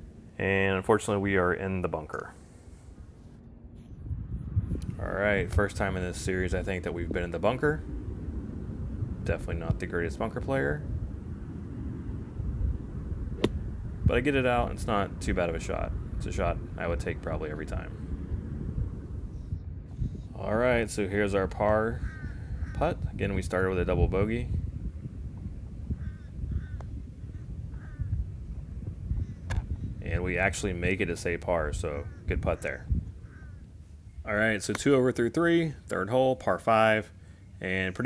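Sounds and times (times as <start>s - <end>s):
low rumble: 2.6s - 34.5s
golf club hitting sand: 13.4s - 13.7s
bird calls: 26.0s - 28.1s, 32.0s - 34.2s.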